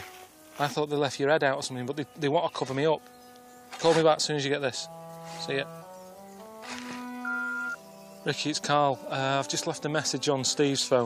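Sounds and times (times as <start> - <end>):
slow held-note background music: 0.0 - 11.0
electronic beep: 7.2 - 7.8.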